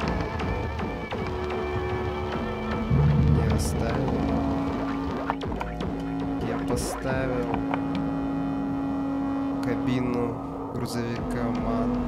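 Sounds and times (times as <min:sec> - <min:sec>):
low sustained synth tones: 0:00.0 - 0:12.0
synthesizer drone: 0:00.0 - 0:12.0.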